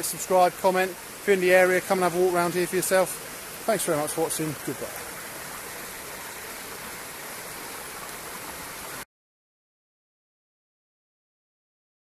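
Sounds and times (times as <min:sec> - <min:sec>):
water running over stone steps: 0:00.0 - 0:09.0.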